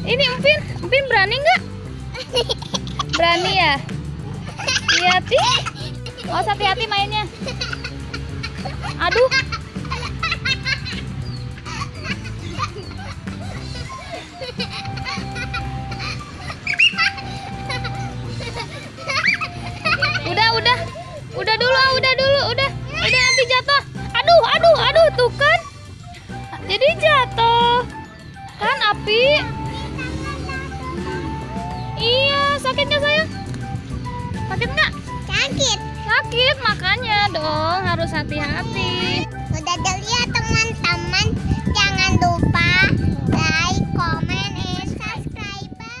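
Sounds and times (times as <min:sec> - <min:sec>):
background music: 0:00.0 - 0:46.0
children squealing: 0:16.1 - 0:21.2, 0:22.9 - 0:23.8.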